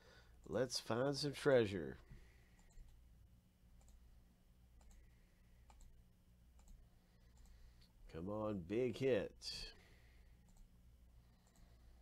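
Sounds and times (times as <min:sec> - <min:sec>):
low electrical hum: 0:00.0 - 0:12.0
computer mouse clicks: 0:02.6 - 0:03.0, 0:03.8 - 0:04.0, 0:04.8 - 0:07.6, 0:10.4 - 0:10.7, 0:11.4 - 0:11.7.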